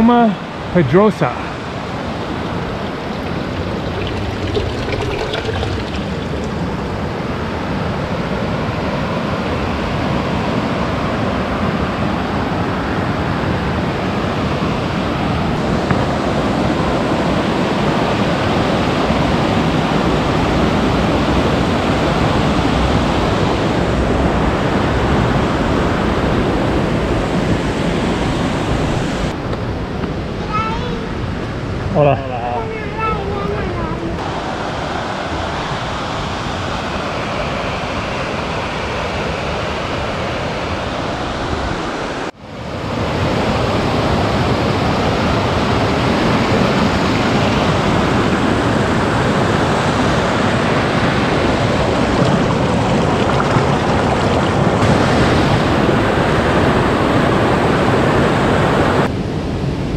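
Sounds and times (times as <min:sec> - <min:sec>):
stream rushing over rocks: 0:01.2 - 0:07.6, 0:49.0 - 0:56.4.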